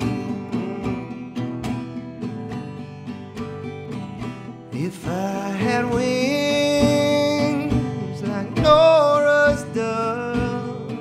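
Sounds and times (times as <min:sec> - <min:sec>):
man singing folk song: 0:00.0 - 0:02.8, 0:03.4 - 0:11.0
plucked acoustic guitar: 0:00.0 - 0:11.0.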